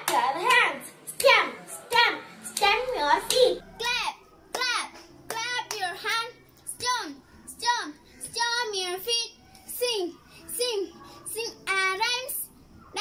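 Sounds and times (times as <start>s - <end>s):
girl singing: 0.0s - 13.0s.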